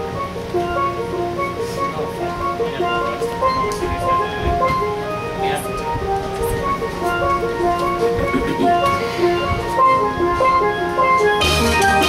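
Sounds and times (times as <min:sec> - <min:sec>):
deep bass notes: 0:00.0 - 0:12.0
steel pan melody: 0:00.0 - 0:12.0
drums: 0:10.4 - 0:12.0.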